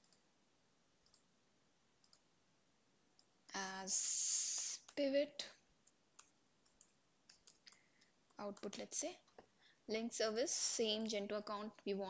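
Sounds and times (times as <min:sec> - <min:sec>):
computer mouse clicks: 0:00.0 - 0:00.3, 0:01.0 - 0:01.3, 0:02.0 - 0:02.3, 0:05.8 - 0:09.5
person speaking: 0:03.5 - 0:05.7, 0:08.3 - 0:12.0.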